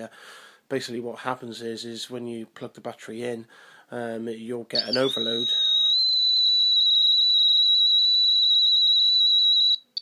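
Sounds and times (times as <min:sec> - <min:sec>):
emf detector alarm tone: 0:04.8 - 0:10.0.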